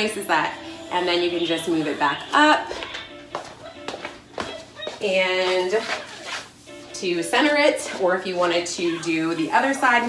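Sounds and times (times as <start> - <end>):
background music: 0.0 - 9.8
light footsteps on floor: 1.6 - 10.0.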